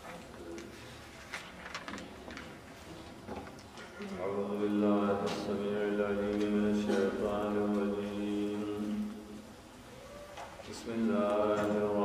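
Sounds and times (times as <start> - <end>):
book pages turning: 0.0 - 2.6
crisp paper rustles: 0.0 - 2.8.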